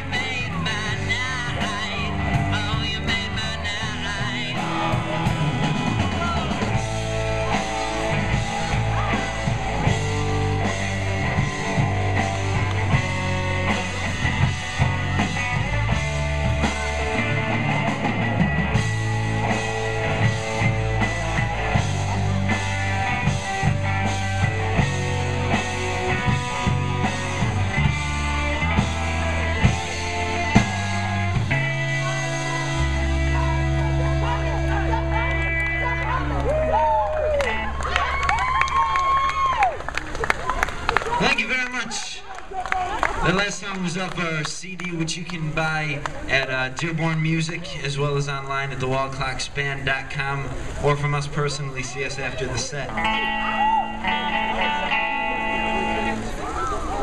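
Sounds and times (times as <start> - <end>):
live rock band playing: 0.0 - 42.0, 52.6 - 57.0.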